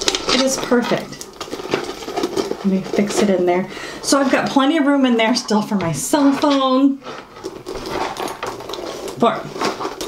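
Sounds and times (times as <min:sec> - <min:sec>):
phone rustling in a handbag: 0:00.0 - 0:04.8, 0:05.5 - 0:10.0.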